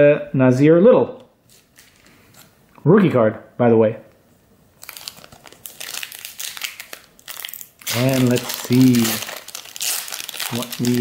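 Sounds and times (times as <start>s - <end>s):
plastic wrapper crinkling and tearing: 4.8s - 11.0s.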